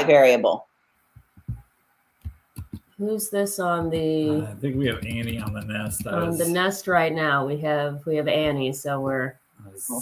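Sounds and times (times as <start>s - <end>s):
soft low thumps: 1.2s - 2.8s, 3.6s - 6.7s.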